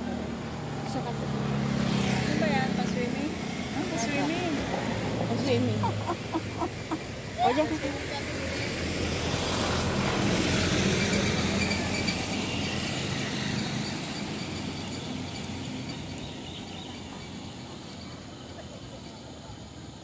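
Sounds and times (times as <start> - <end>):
motor vehicle passing: 0.0 - 17.6.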